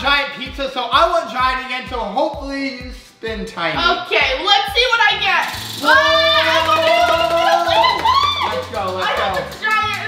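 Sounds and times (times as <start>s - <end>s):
background music with bass beat: 0.0s - 10.0s
man and woman shouting excitedly: 3.7s - 10.0s.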